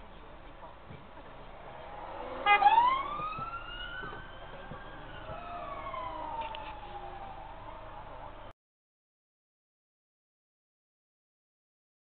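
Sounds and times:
emergency vehicle siren wailing: 1.6 - 8.5.

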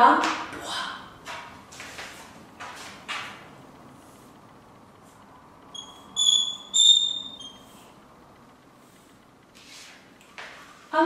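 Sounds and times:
chalk squeaking on blackboard: 5.8 - 7.9.

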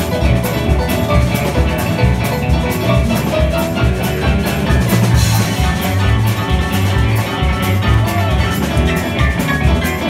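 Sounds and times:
blues band playing: 0.0 - 10.0.

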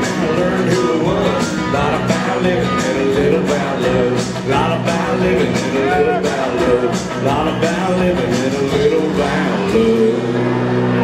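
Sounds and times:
drums: 0.0 - 11.0
guitars: 0.0 - 11.0.

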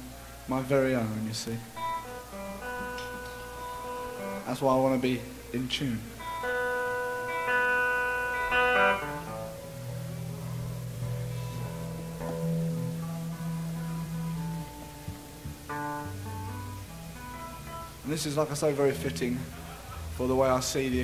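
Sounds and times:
guitar being tuned: 0.0 - 21.0.

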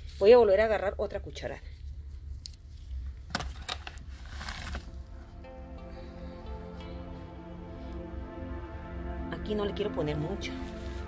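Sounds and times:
paper rustle: 2.7 - 5.0
paper bag crinkling: 3.4 - 5.2
steady low rumble: 4.1 - 11.0.

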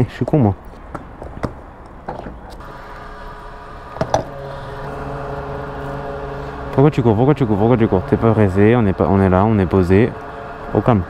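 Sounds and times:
fuel pump humming: 2.0 - 11.0.

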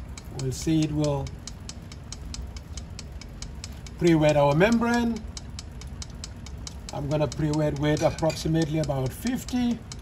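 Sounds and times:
low motor hum: 0.0 - 10.0
pump ticking: 0.0 - 10.0.

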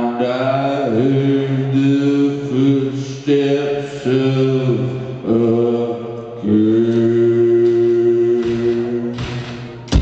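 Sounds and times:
low chant-like sung vocal: 0.0 - 10.0
rock band playing droning passage: 6.9 - 10.0.

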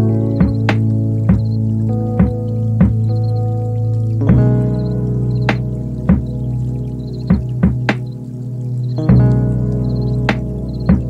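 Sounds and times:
slow instrumental music: 0.0 - 11.0.

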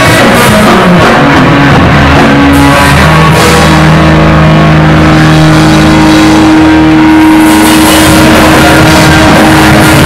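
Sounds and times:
cymbals: 0.0 - 10.0
distorted guitar and bass chord: 0.0 - 10.0.

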